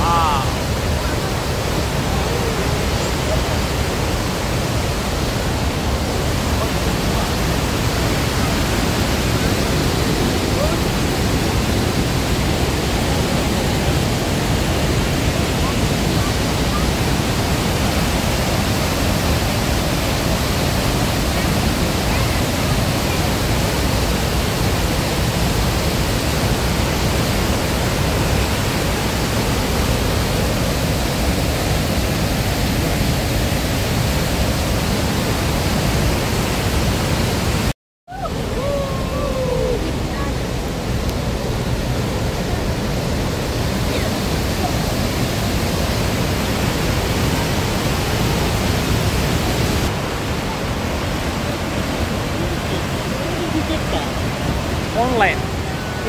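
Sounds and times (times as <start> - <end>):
waterfall rushing: 0.0 - 56.0.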